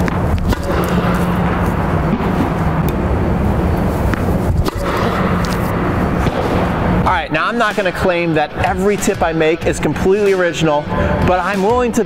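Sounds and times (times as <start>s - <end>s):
ventilation blower humming and rushing: 0.0s - 12.0s.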